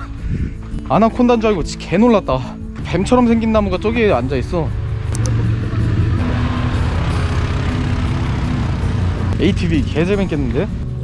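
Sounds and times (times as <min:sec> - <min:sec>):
quad bike engines droning: 0:02.8 - 0:11.0.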